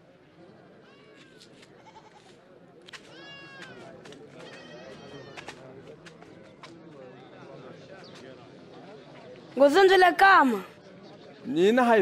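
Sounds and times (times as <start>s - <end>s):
goats bleating faintly: 0.9s - 2.4s.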